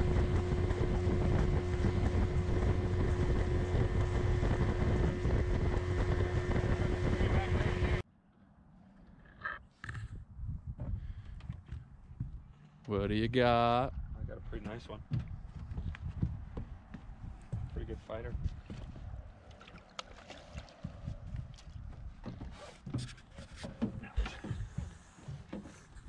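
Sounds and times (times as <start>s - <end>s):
boat motor running: 0.0s - 8.0s, 14.6s - 26.0s
wind noise on microphone: 0.0s - 8.0s, 9.9s - 12.5s, 13.8s - 19.3s.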